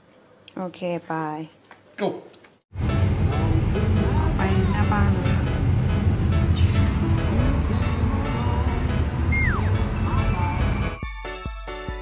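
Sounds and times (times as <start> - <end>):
music: 2.8 - 12.0.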